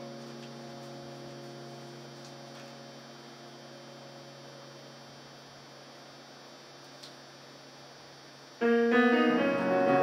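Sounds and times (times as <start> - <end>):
electric keyboard notes: 0.0 - 5.4, 8.6 - 10.0
electrical mains hum: 0.0 - 10.0.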